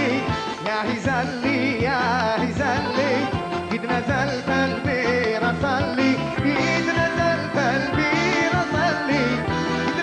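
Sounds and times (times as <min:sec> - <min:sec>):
bass and drum beat: 0:00.0 - 0:10.0
man singing ornamented melody: 0:00.0 - 0:10.0.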